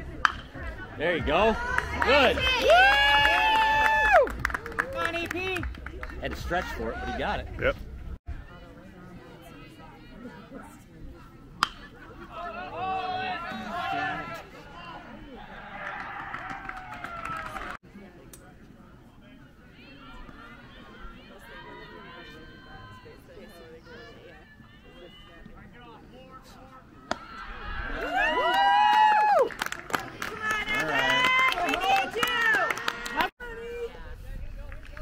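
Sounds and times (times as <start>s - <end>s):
spectators shouting and cheering: 0.0s - 7.5s, 12.2s - 17.8s, 27.0s - 33.7s.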